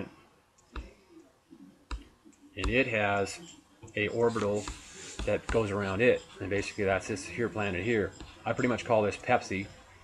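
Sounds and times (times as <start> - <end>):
computer mouse clicks: 1.9 - 2.8.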